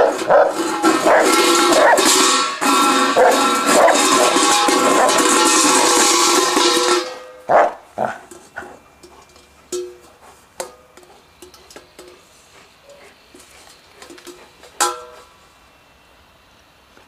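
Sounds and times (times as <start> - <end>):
metal bowl scraping on concrete: 0.0 - 12.6
bowl clatter: 0.2 - 7.3.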